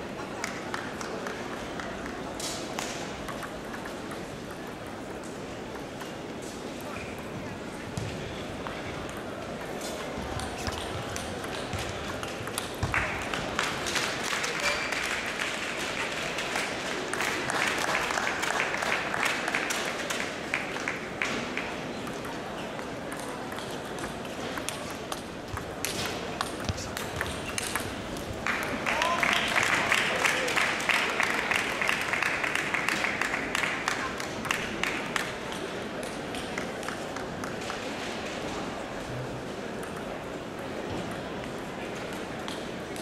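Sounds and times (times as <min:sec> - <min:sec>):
murmur of voices: 0:00.0 - 0:43.0
table tennis ball clicking: 0:02.8 - 0:05.0, 0:23.1 - 0:28.0.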